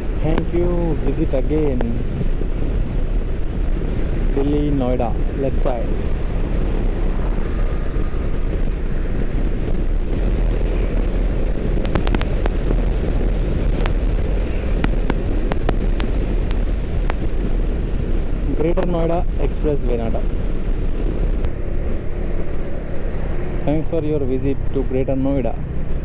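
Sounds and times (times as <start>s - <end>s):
motorcycle engine and tyres rumbling: 0.0s - 26.0s
wind buffeting microphone: 0.0s - 26.0s
sharp ticks: 10.6s - 17.5s.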